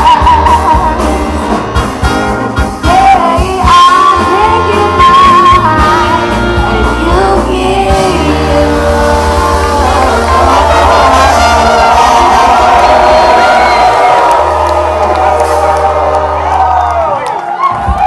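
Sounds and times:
live band music: 0.0s - 18.0s
crowd cheering and whooping: 8.9s - 18.0s.

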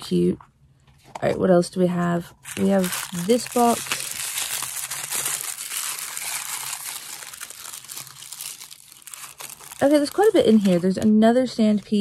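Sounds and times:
wrapping paper crinkling: 2.3s - 12.0s.

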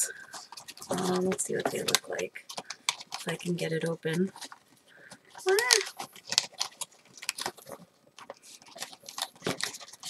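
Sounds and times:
snack wrapper crackling: 5.3s - 10.0s.

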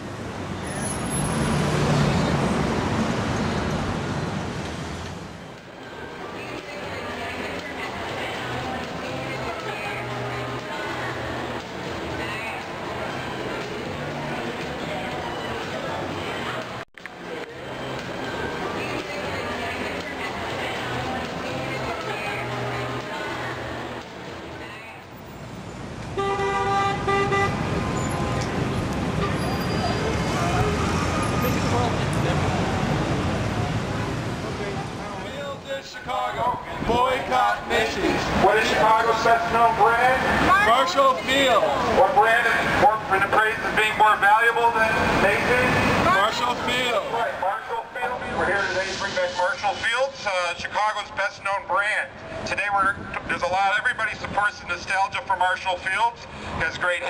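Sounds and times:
city street traffic: 0.0s - 57.0s
vehicle passing close by: 0.7s - 5.0s
car horn honking: 26.2s - 28.2s, 29.2s - 30.1s.

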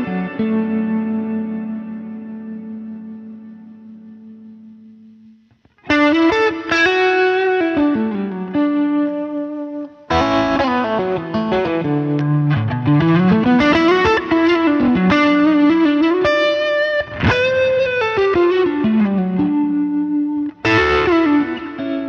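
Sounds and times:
overdriven electric guitar: 0.0s - 22.0s.

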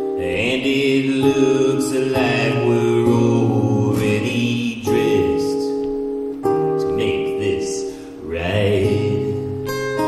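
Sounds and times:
acoustic guitar: 0.0s - 10.0s
man singing long held notes: 0.2s - 5.8s, 6.8s - 9.6s.

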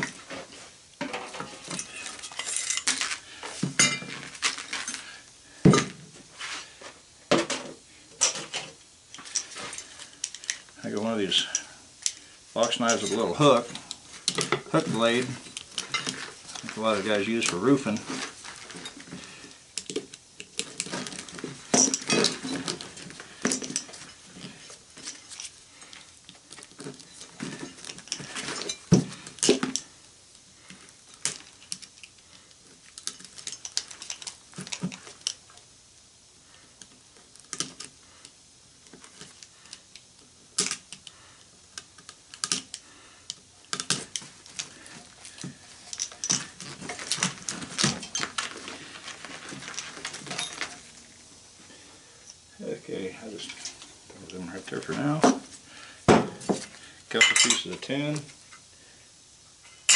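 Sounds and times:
hand tools clicking and scraping: 0.0s - 7.5s, 8.2s - 30.0s, 30.6s - 35.6s, 36.7s - 51.2s, 53.1s - 58.6s.

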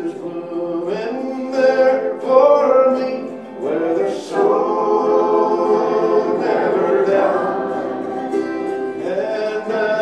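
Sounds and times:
voices singing in harmony: 0.0s - 10.0s.

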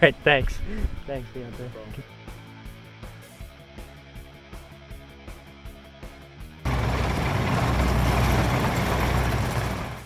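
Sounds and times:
soft background music: 0.0s - 6.2s.

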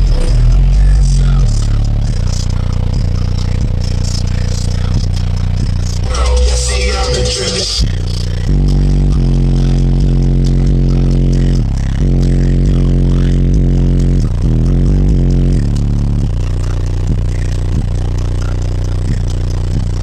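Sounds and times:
loud bass-heavy music from subwoofer: 0.0s - 20.0s.

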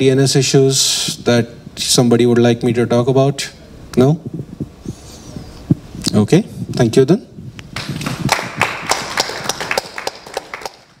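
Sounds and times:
sparse applause: 7.8s - 11.0s.

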